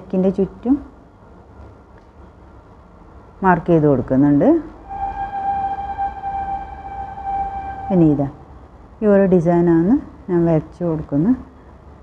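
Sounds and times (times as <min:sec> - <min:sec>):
steady pitched tone: 0:04.8 - 0:09.0.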